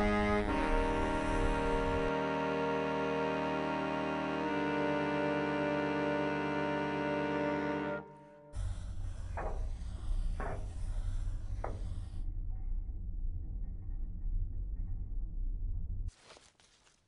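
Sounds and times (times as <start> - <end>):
slow sustained music chords: 0.0 - 9.6
low hum: 0.0 - 16.1.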